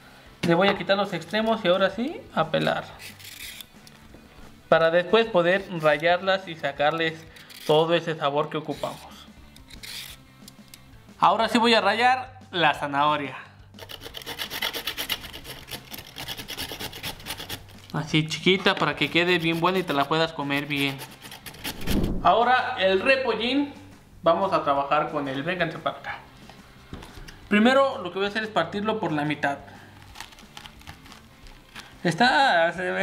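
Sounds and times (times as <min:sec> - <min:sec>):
knife cutting cabbage: 0:02.6 - 0:03.9, 0:08.7 - 0:10.2, 0:13.8 - 0:18.0, 0:19.0 - 0:22.0, 0:29.8 - 0:32.0
carrot grating on metal grater: 0:02.8 - 0:03.7, 0:08.7 - 0:10.2, 0:13.8 - 0:17.9, 0:19.0 - 0:21.9.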